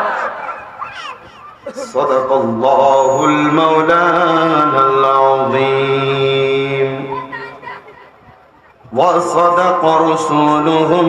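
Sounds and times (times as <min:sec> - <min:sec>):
man reciting melodically: 0:01.6 - 0:07.8, 0:08.8 - 0:11.0.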